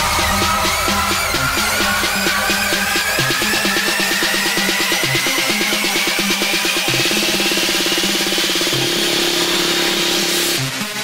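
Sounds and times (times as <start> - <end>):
pulsing synth roll: 0.0 - 10.8
synth sweep rising in pitch: 0.0 - 11.0.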